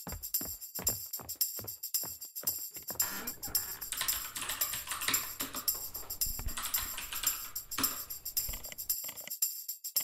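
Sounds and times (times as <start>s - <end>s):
background music: 3.0s - 9.0s
typing on keyboard: 3.0s - 9.0s.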